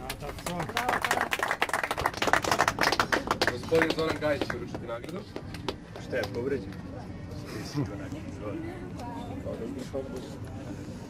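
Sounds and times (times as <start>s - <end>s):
people applauding: 0.0s - 6.4s.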